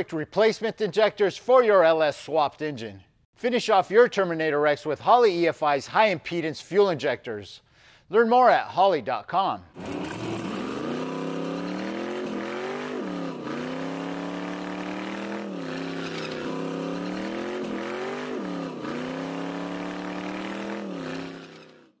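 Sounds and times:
car engine at high revs: 0:09.8 - 0:22.0.

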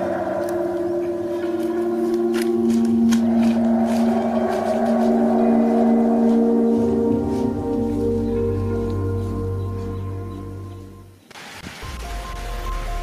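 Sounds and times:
ringing singing bowl drone: 0:00.0 - 0:11.2.

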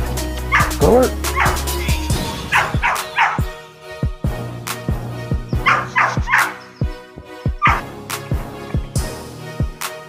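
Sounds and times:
music with deep bass beat: 0:00.0 - 0:10.0.

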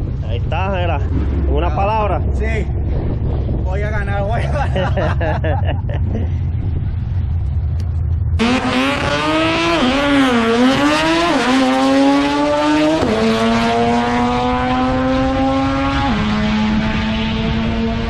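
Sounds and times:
low steady rumble: 0:00.0 - 0:10.6
drag racing car engine accelerating: 0:06.5 - 0:18.0.

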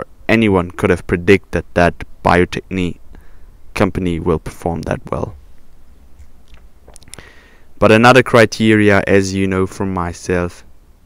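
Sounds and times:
man speaking: 0:00.0 - 0:03.0, 0:03.7 - 0:05.4, 0:07.8 - 0:10.7
intake of breath: 0:03.1 - 0:03.6, 0:07.1 - 0:07.7
faint clicks: 0:05.5 - 0:07.3.

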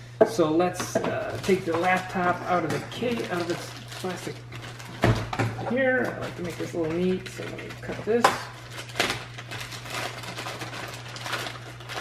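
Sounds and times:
plastic bag crinkling: 0:01.1 - 0:12.0.

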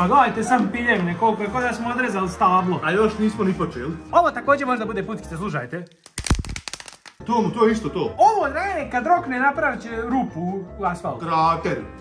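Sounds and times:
plastic bag crinkling and tearing: 0:05.8 - 0:07.2.

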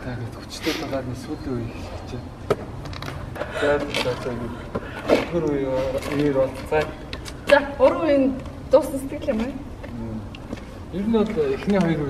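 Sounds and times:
two people talking: 0:00.0 - 0:12.0.

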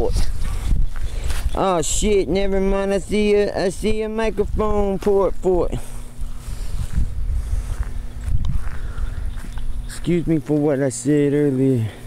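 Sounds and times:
wind buffeting microphone: 0:00.0 - 0:10.4
faint steady hum: 0:00.0 - 0:12.0.

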